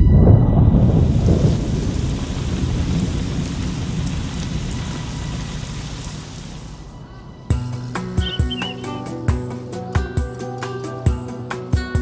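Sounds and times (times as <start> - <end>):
thunder rumbling: 0.0 - 9.1
rain hissing: 0.2 - 9.3.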